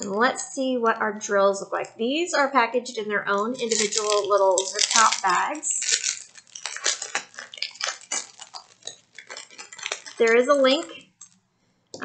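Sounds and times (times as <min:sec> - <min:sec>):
plastic bags crinkling: 0:03.3 - 0:11.4
small beads clicking together: 0:03.4 - 0:11.4.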